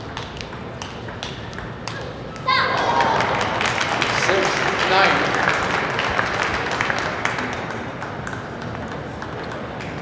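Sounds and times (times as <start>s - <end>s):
table tennis ball clicking: 0.0s - 2.2s, 7.4s - 10.0s.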